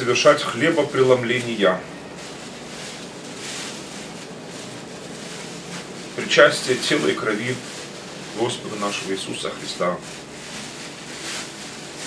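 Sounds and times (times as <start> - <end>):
flatbread and cloth rustling: 0.0 - 12.0
steady background hiss: 0.0 - 12.0.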